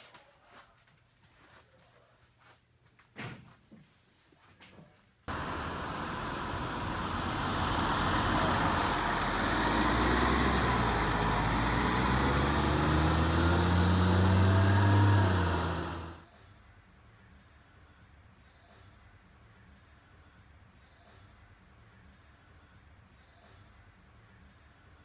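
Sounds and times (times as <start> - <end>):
bus engine running: 5.3 - 16.3.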